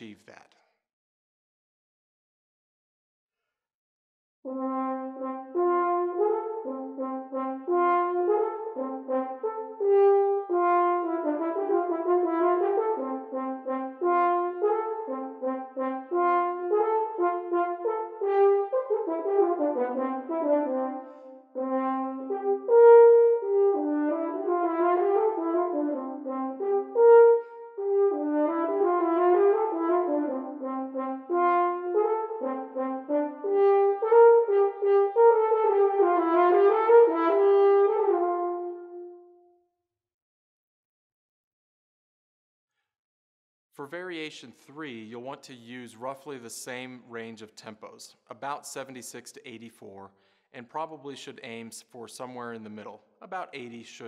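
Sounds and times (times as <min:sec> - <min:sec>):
solo french horn playing: 0:04.5 - 0:39.6.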